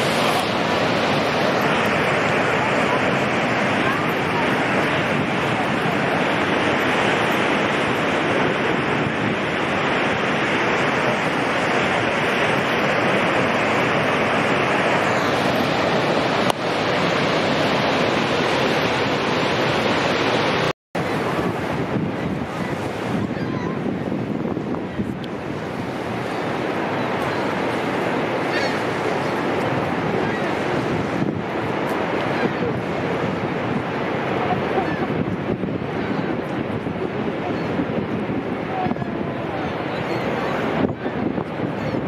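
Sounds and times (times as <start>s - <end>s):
waterfall rushing: 0.0s - 42.0s
wind on microphone: 0.0s - 42.0s.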